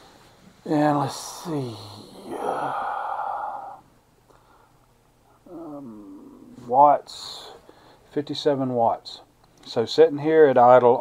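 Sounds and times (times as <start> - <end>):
breathy exhale: 2.2 - 4.8.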